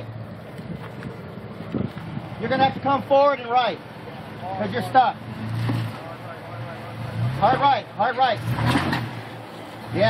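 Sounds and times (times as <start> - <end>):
engine pulling under load: 3.8 - 10.0.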